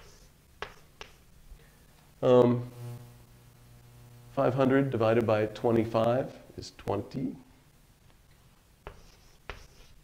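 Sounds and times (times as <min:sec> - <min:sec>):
writing tool tapping board: 0:00.0 - 0:01.2
faint scratching on board: 0:00.0 - 0:01.3, 0:08.8 - 0:10.0.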